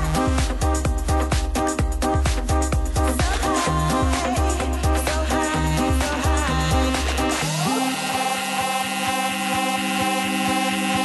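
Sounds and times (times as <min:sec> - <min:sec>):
sustained synth chord: 0:05.8 - 0:11.0.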